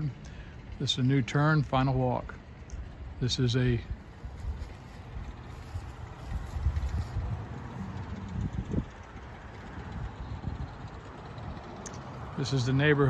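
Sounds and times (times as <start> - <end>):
wind buffeting microphone: 3.0 - 13.0.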